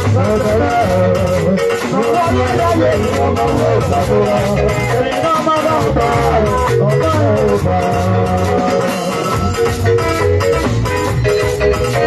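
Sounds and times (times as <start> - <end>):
live band playing instrumental: 0.0 - 12.0.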